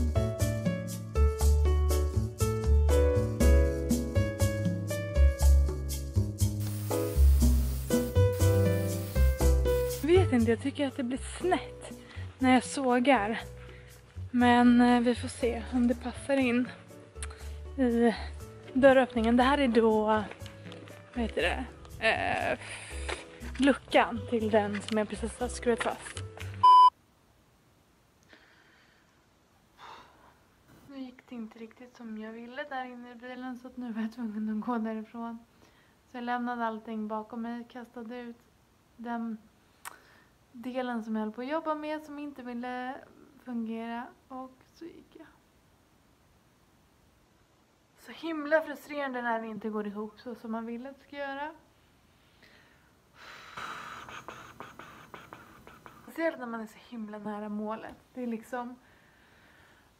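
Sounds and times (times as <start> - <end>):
faint breathing: 13.6 - 14.1, 28.2 - 29.2, 35.5 - 36.0, 39.9 - 40.4, 51.8 - 56.1, 58.8 - 59.9
woman sighing: 29.8 - 30.3
mouth clicks: 53.6 - 56.1.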